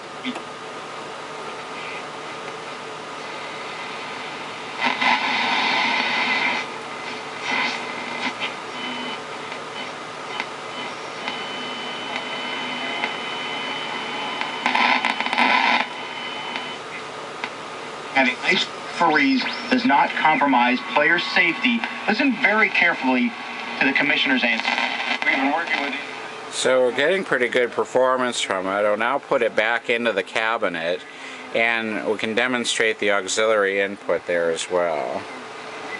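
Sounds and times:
radio static hiss: 0:00.2 - 0:35.9
bursts of noise: 0:11.2 - 0:16.7, 0:18.2 - 0:26.4.

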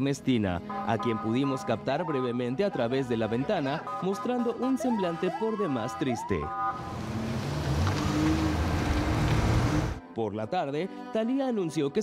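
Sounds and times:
car engine and tyre rumble: 0:06.5 - 0:10.0.

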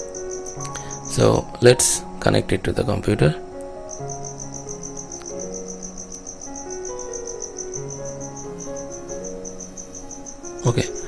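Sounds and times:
cricket chirping: 0:00.0 - 0:02.1, 0:03.6 - 0:11.0
soft background music: 0:00.0 - 0:11.0.

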